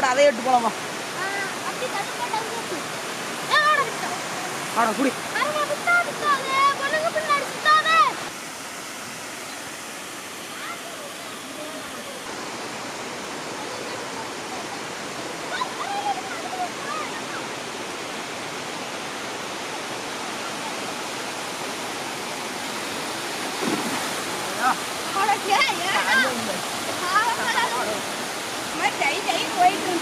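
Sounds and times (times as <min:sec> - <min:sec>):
voices: 0:24.3 - 0:30.0.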